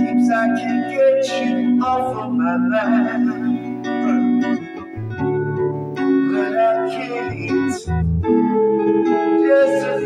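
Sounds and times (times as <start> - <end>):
backing track with guitar and keyboard: 0.0 - 10.0.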